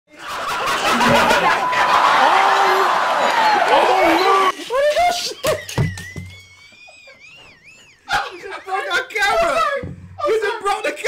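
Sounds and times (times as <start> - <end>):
hearty laughter: 0.1 - 2.6, 4.6 - 9.4.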